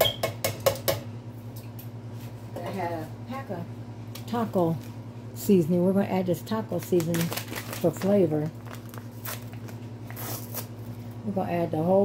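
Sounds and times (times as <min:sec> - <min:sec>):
steady low hum: 0:00.0 - 0:12.0
packet crinkling and rustling: 0:06.7 - 0:11.0.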